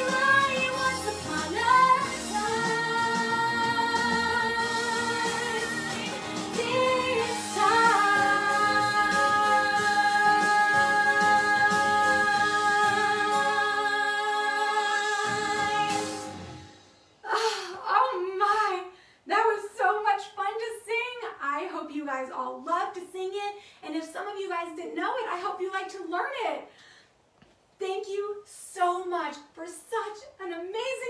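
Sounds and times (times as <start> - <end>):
woman singing pop song: 0.0 - 16.3
backing track: 0.0 - 17.2.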